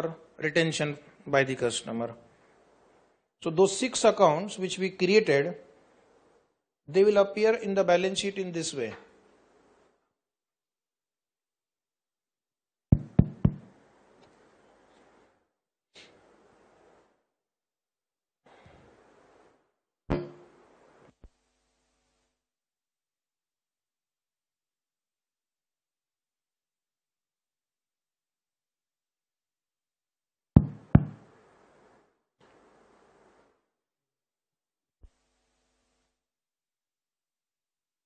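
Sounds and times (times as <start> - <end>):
quick knocks: 12.9 - 13.7, 30.6 - 31.2
faint rustling: 13.7 - 15.4.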